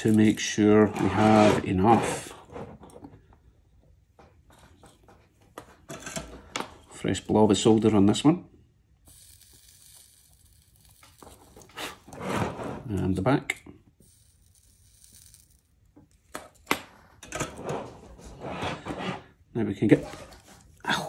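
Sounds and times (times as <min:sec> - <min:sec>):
flux sizzling under soldering iron: 0:08.9 - 0:12.2, 0:14.0 - 0:16.4.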